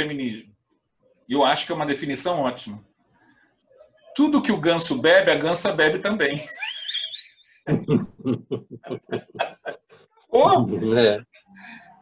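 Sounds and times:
person laughing heartily: 6.4s - 9.9s.

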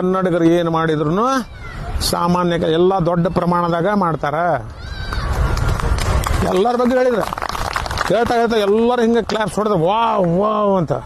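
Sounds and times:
man speaking: 8.1s - 11.0s.

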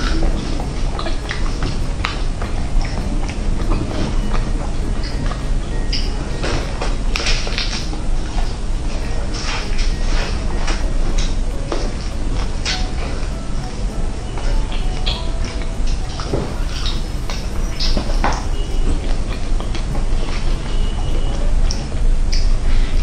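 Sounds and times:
low hum: 0.0s - 23.0s.

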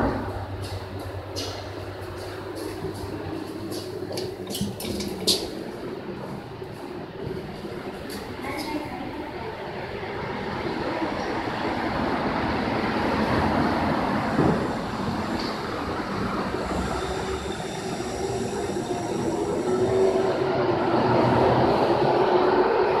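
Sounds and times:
subway train rumbling: 0.0s - 23.0s.

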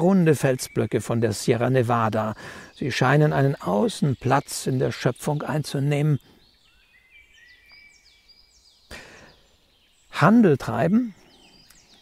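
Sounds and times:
faint songbirds singing: 0.0s - 12.0s.

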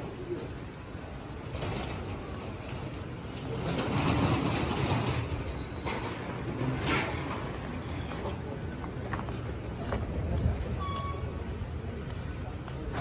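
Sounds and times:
street ambience: 0.0s - 13.0s.

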